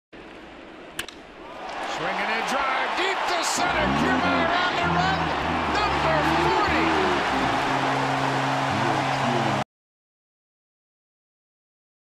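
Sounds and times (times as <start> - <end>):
crowd cheering: 1.4 - 9.7
voices: 1.8 - 9.6.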